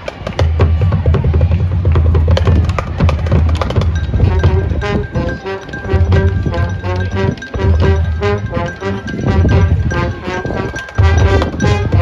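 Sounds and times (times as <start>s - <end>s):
marching band playing: 0.4s - 12.0s.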